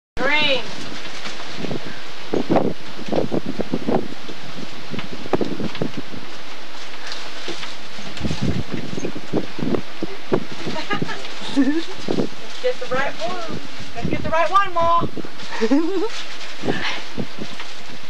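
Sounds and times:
steady hiss: 0.2s - 18.0s
plastic bags crinkling: 6.4s - 14.1s, 15.3s - 18.0s
person laughing: 10.0s - 12.2s, 15.5s - 17.0s.

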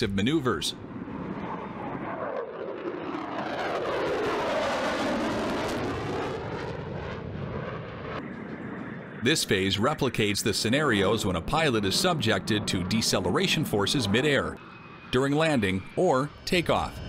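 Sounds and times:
fighter jet flying past: 0.6s - 17.0s.

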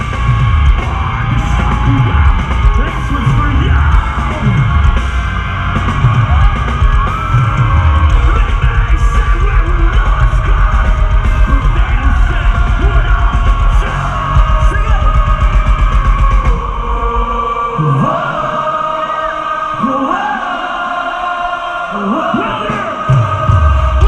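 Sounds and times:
live metal band playing: 0.0s - 17.8s
voices singing: 0.0s - 24.0s
yelled vocals: 0.0s - 24.0s.

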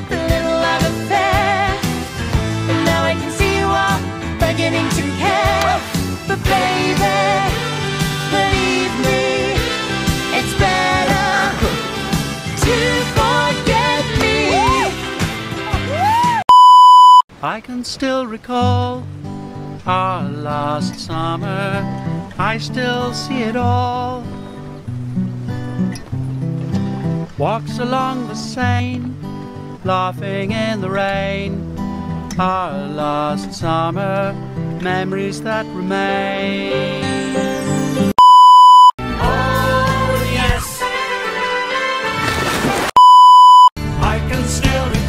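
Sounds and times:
acoustic guitar music: 0.0s - 16.0s, 18.6s - 42.4s
pop song with sung voice: 0.0s - 16.4s, 17.4s - 19.1s, 19.8s - 24.5s, 27.4s - 31.6s, 32.3s - 38.1s, 39.0s - 41.7s, 43.8s - 45.0s
steady electronic beep: 16.5s - 17.2s, 38.2s - 39.0s, 43.0s - 43.8s.

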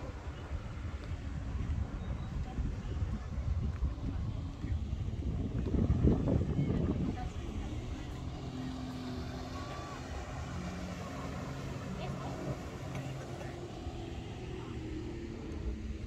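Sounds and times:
jet ski engine: 0.0s - 16.0s
people's voices: 0.0s - 16.0s.

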